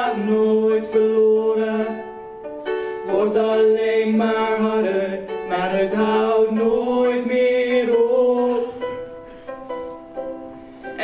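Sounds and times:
ukulele chords: 0.0 - 11.0.

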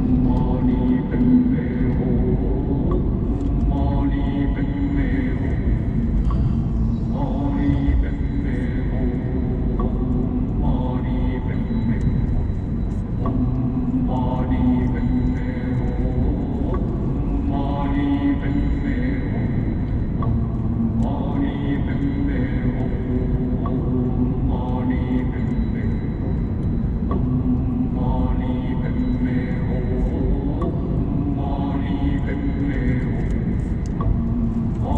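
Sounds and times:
person chanting sustained notes: 3.6 - 5.9, 6.8 - 12.5, 13.3 - 19.9, 21.0 - 26.3, 27.7 - 33.8.

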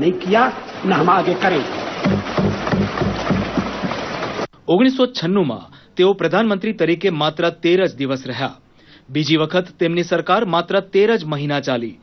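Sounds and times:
hands thumping on wooden desks: 2.0 - 4.2.

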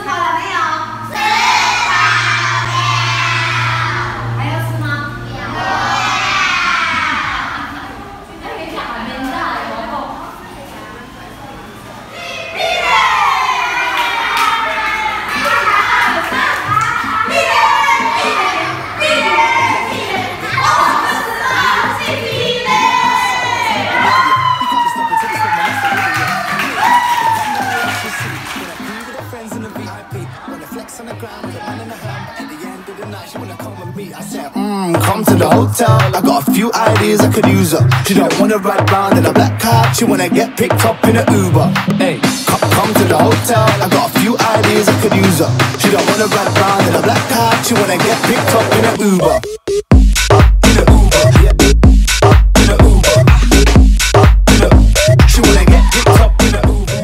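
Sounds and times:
children chanting in unison: 1.1 - 4.4, 5.2 - 7.9, 12.3 - 24.2
music with steady beat: 19.7 - 57.0.

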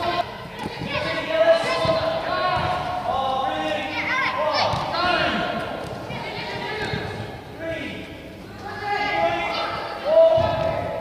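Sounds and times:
young footballers shouting: 0.0 - 7.9, 8.6 - 11.0
football bouncing on artificial turf: 0.6 - 2.8.

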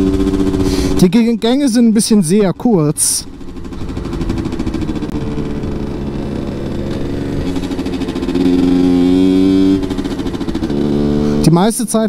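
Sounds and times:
two-stroke motorcycle engine revving: 0.0 - 12.0.

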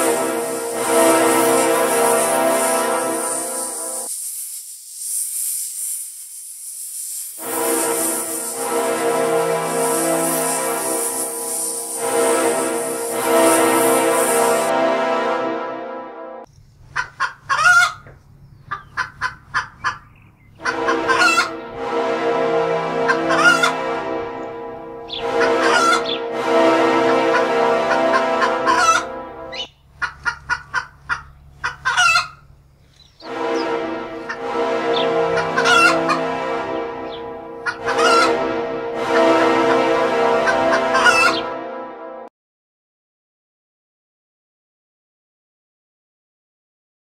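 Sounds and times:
steady many-toned layer: 0.0 - 4.1, 7.4 - 16.4, 20.7 - 29.7, 33.2 - 42.2
hens clucking: 16.9 - 21.6, 23.1 - 23.8, 25.2 - 26.2, 27.3 - 29.1, 30.0 - 32.4, 35.3 - 36.3, 37.6 - 38.5, 39.2 - 41.4
hen squawking calls: 20.6 - 21.6, 25.1 - 26.2, 37.6 - 38.4.

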